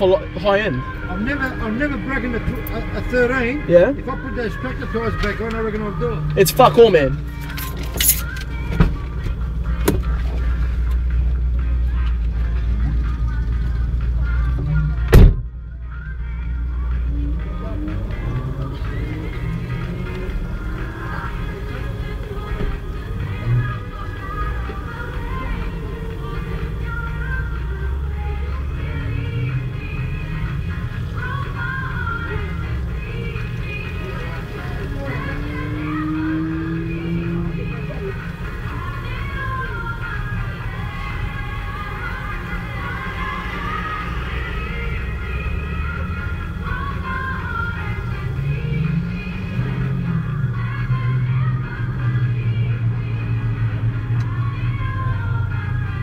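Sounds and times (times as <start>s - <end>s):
song playing in a car: 0.0s - 56.0s.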